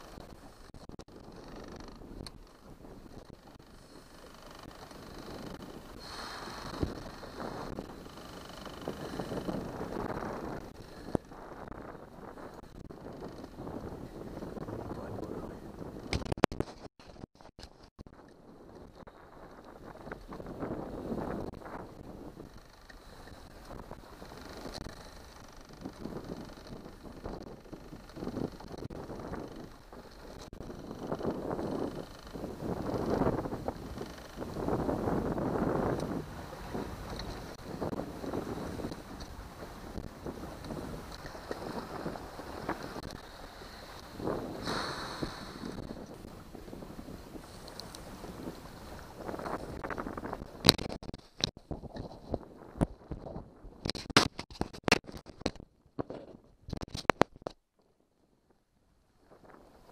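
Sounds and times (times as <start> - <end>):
outboard motor running: 0.0 - 16.5, 17.1 - 50.8
wind buffeting microphone: 0.0 - 57.1, 59.2 - 59.9
water rushing past hull: 32.5 - 50.4.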